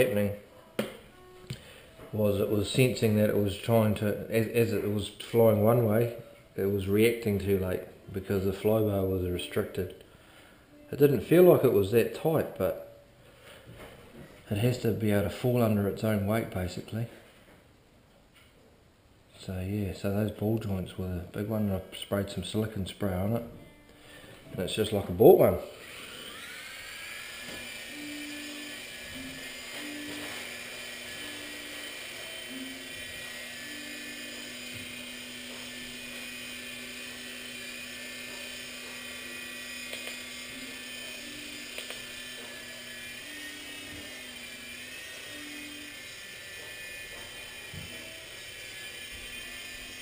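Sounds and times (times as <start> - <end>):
small electric rotors whining: 24.7 - 50.0.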